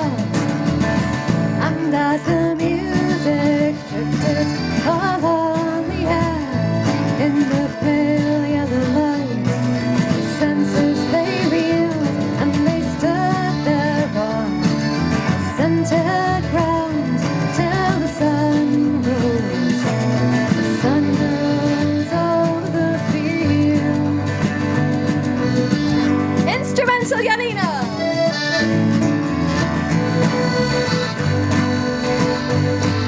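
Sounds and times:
woman singing: 0:00.0 - 0:00.6, 0:01.5 - 0:25.1, 0:26.0 - 0:28.0
accordion: 0:00.0 - 0:33.0
acoustic guitar: 0:00.0 - 0:33.0
electric bass: 0:00.0 - 0:33.0.

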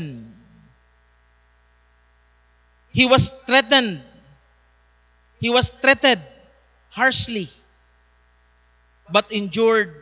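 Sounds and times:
man speaking: 0:00.0 - 0:00.6, 0:03.0 - 0:04.3, 0:05.4 - 0:07.6, 0:09.1 - 0:10.0
faint electrical mains hum: 0:00.0 - 0:10.0.

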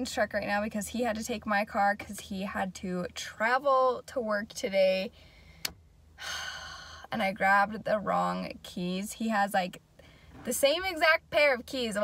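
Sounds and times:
woman sighing: 0:06.2 - 0:07.1.

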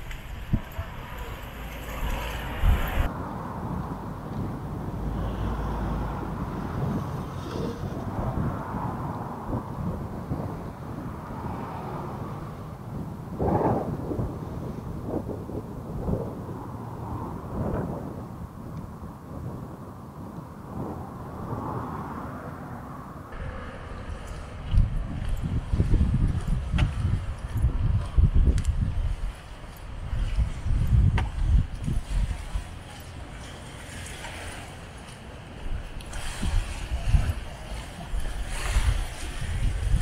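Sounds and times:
wind on microphone: 0:00.0 - 0:40.0.

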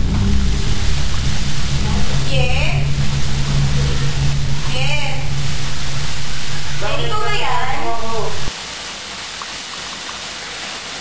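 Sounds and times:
low hum: 0:00.0 - 0:08.5
loud hiss: 0:00.0 - 0:11.0.

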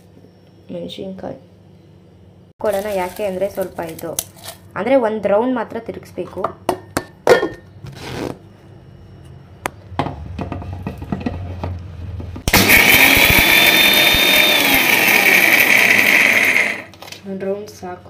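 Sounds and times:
mixer grinder grinding: 0:12.5 - 0:17.0.

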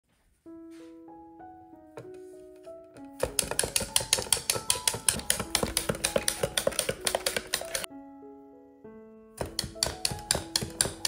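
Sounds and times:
soft piano music: 0:00.1 - 0:11.0
fast sharp taps: 0:03.2 - 0:07.9, 0:09.4 - 0:11.0.

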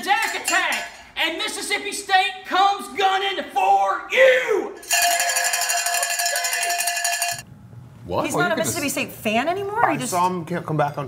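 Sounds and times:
cowbell clanging: 0:04.8 - 0:07.5.

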